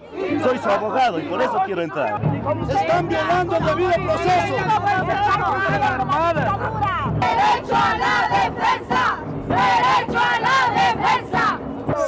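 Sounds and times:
protesters chanting: 7.2s - 12.0s.

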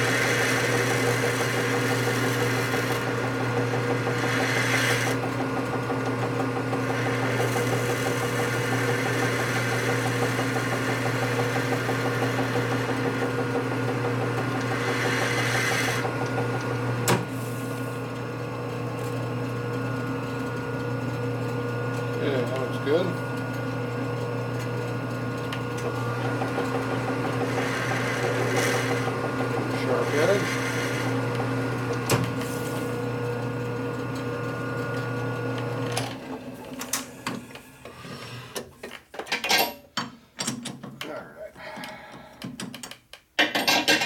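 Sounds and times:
metal lathe humming: 0.0s - 37.5s.

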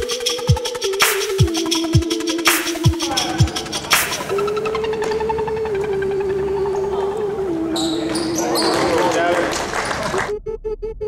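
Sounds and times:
sneaker squeaks: 7.7s - 9.2s.

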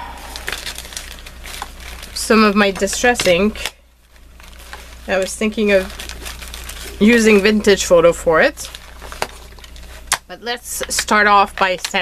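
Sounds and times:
items shifting inside bag: 0.0s - 3.6s, 4.2s - 10.1s
plastic bag crinkling: 0.0s - 10.2s.

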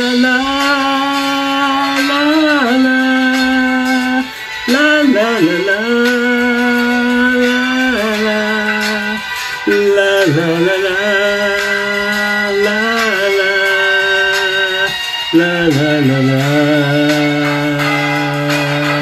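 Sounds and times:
man singing slow ballad: 0.0s - 19.0s.

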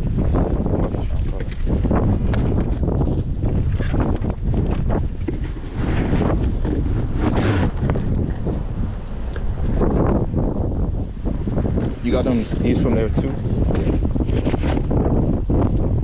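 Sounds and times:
wind noise on microphone: 0.0s - 16.0s.

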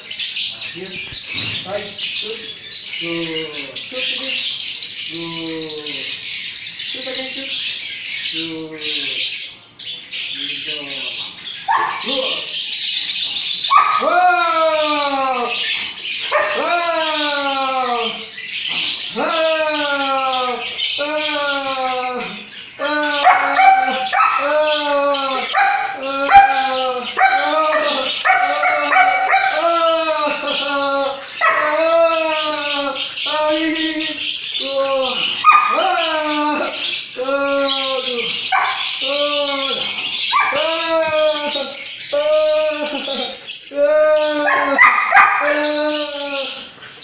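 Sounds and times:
dog barking: 11.7s - 12.2s, 13.7s - 14.1s, 16.3s - 16.7s, 23.2s - 24.5s, 25.4s - 29.6s, 31.4s - 31.8s, 35.4s - 35.8s, 38.5s - 39.0s, 40.3s - 40.6s, 44.5s - 45.6s
dog howling: 13.7s - 15.6s, 16.3s - 18.3s, 19.2s - 33.6s, 34.6s - 41.8s, 42.4s - 46.8s.

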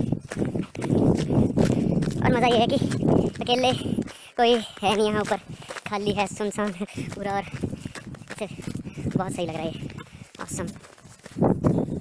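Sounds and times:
footsteps in snow: 0.0s - 12.0s.

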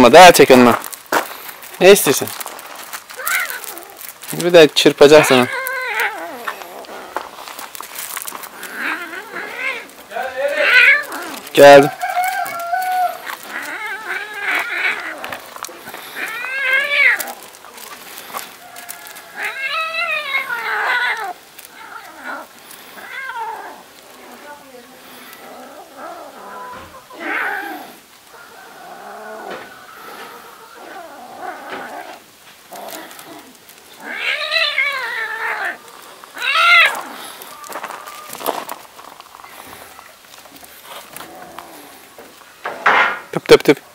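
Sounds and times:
cat yowling: 3.1s - 4.1s, 5.1s - 6.9s, 8.6s - 15.5s, 16.1s - 17.6s, 18.8s - 23.9s, 32.8s - 38.4s.

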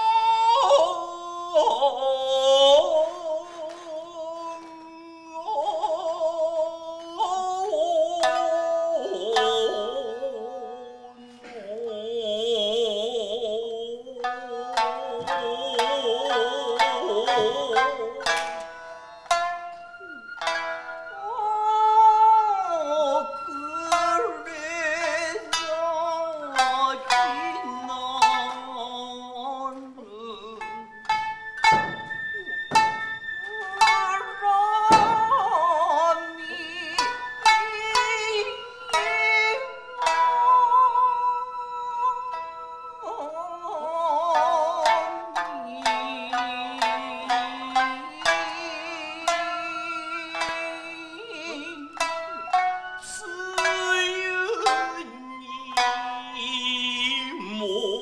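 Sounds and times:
person singing narrative: 0.0s - 58.0s
shamisen plucking: 0.0s - 58.0s.

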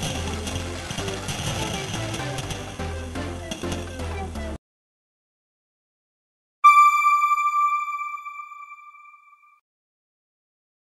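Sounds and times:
single chime ringing: 6.6s - 9.5s.

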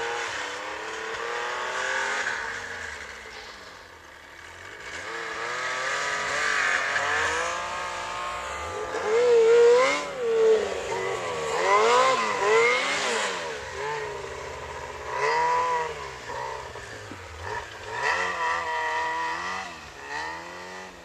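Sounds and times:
snowmobile engine revving: 0.0s - 21.0s.

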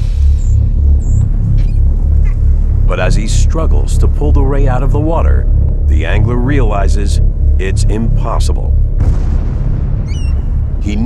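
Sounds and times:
low rumble: 0.0s - 11.0s
pulsing deep bass beat: 0.0s - 11.0s
narrator speaking: 2.9s - 8.8s.

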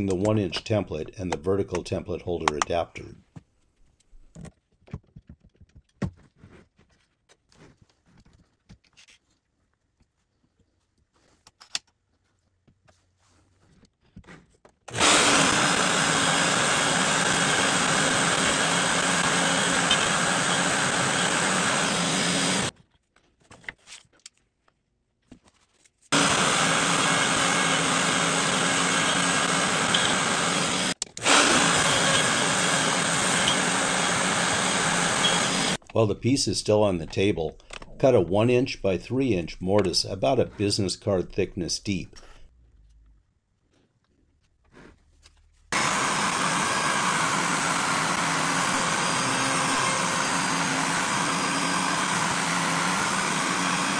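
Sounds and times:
handling clicks and taps: 0.0s - 2.8s
wood router cutting: 14.9s - 22.7s, 26.1s - 35.8s, 45.7s - 53.9s.

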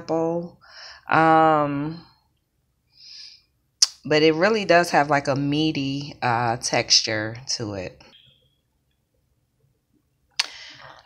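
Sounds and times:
woman speaking: 0.0s - 2.2s, 3.8s - 8.2s
woman breathing in: 10.5s - 11.0s.

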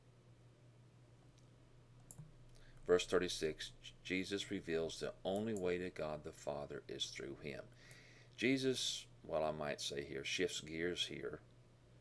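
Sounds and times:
low electrical hum: 0.0s - 12.0s
faint clicks: 1.3s - 2.8s
man's voice: 2.9s - 7.7s.

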